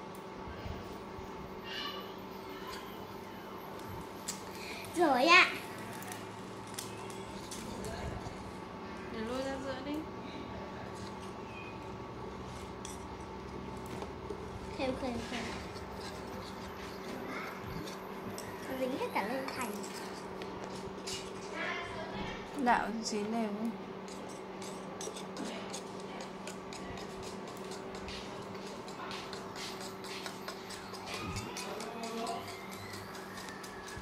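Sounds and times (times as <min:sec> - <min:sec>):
steady hum: 0:00.0 - 0:34.0
wire whisk scraping a metal pot: 0:14.7 - 0:21.4, 0:24.1 - 0:34.0.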